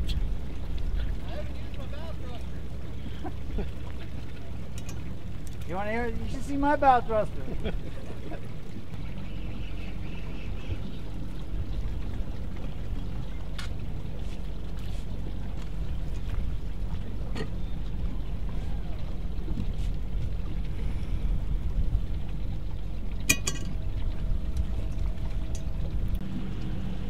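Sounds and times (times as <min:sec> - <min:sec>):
boat motor humming: 0:00.0 - 0:27.0.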